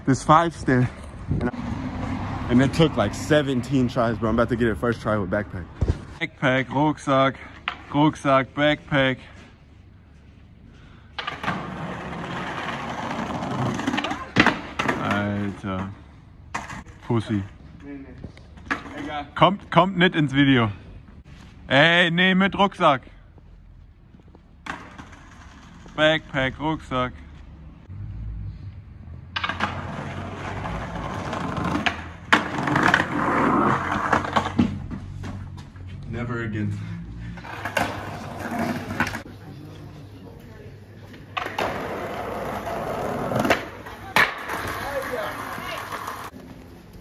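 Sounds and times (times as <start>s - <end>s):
skateboard rolling over paving: 11.2s - 15.5s, 29.4s - 35.4s, 37.4s - 39.3s, 41.3s - 46.8s
skateboard clacks: 29.4s - 34.8s, 41.3s - 46.4s
skateboard sharp clack: 41.4s - 46.3s.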